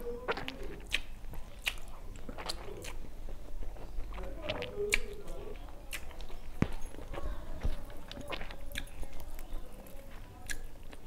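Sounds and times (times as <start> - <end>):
chewing with wet mouth clicks: 0.0 - 11.0.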